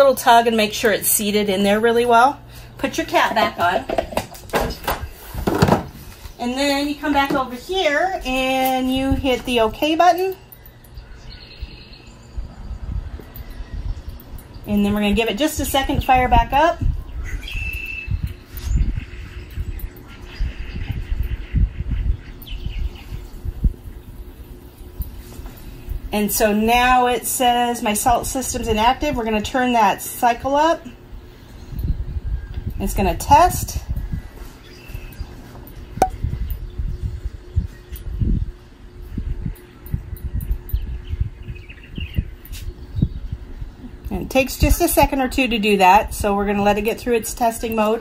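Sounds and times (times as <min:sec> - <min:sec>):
faint steady hum: 0:00.0 - 0:48.0.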